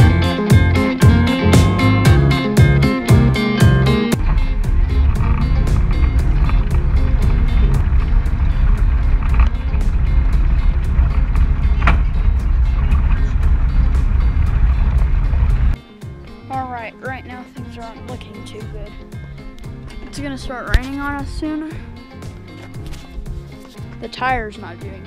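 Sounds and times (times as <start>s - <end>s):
off-road vehicle engine rumble: 0.0s - 15.8s, 17.7s - 24.9s.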